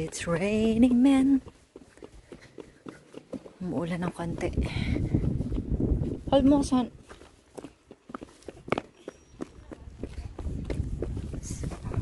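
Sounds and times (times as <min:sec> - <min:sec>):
footsteps on asphalt: 0:00.0 - 0:12.0.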